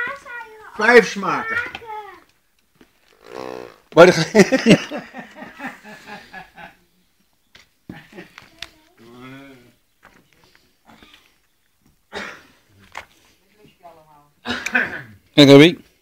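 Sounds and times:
quiet scattered voice sounds: 5.1 - 15.2.

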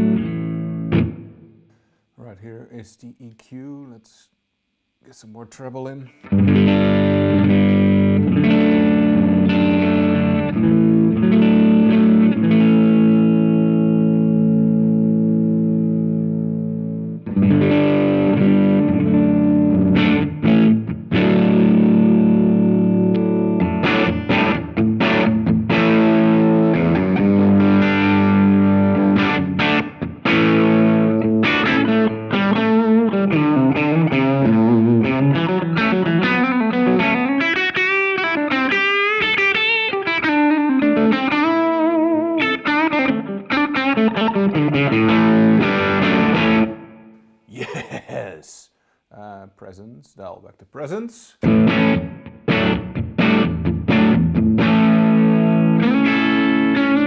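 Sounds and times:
overdriven electric guitar: 0.0 - 1.9, 6.2 - 47.2, 51.4 - 57.0.

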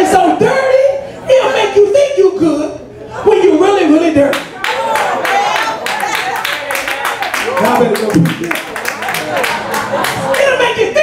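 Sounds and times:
hand clapping: 4.3 - 10.5
man speaking into a microphone: 7.5 - 8.6.

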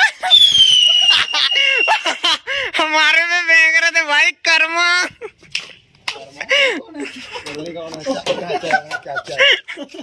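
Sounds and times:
high descending whistle: 0.2 - 2.1
men's voices: 6.0 - 10.0.

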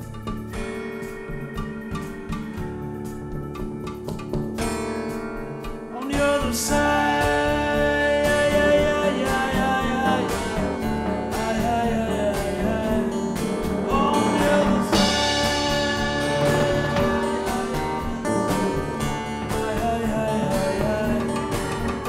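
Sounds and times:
slide acoustic guitar blues: 0.0 - 22.0
person singing: 5.9 - 22.0.

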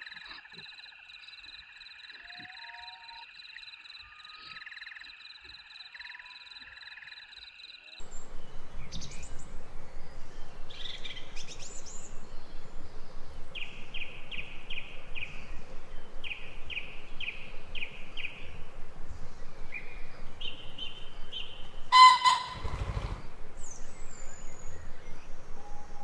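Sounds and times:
songbird calling: 0.0 - 26.0
steady background noise: 8.0 - 22.0
low rumble: 8.0 - 26.0.

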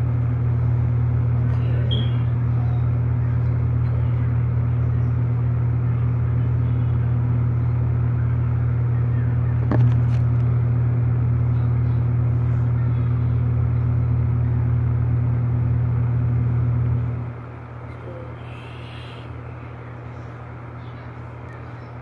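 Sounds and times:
loud low hum: 0.0 - 22.0.

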